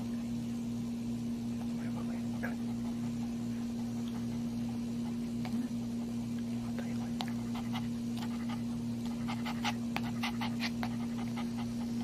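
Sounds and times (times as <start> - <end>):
steady low hum: 0.0 - 12.0
dog panting: 1.6 - 12.0.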